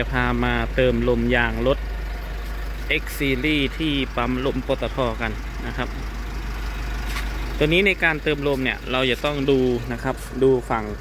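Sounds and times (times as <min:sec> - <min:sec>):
man speaking: 0:00.0 - 0:01.8, 0:02.8 - 0:06.2, 0:07.6 - 0:11.0
steady low hum: 0:00.0 - 0:11.0.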